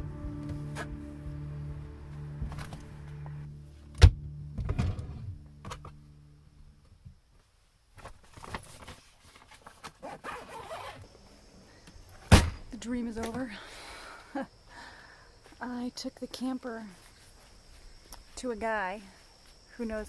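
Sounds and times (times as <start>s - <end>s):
soft background music: 0.0s - 6.7s
fabric rustling: 7.4s - 11.0s
clothes stuffed into bag: 8.0s - 11.0s
bag zipper: 10.0s - 11.0s.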